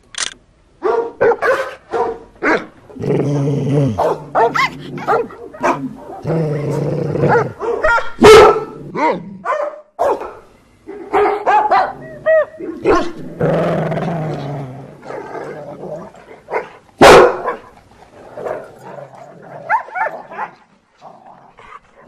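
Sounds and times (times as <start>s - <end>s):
dogs barking and yipping: 0.8s - 2.8s, 4.0s - 6.3s, 7.2s - 13.2s, 16.3s - 17.8s, 18.4s - 20.7s.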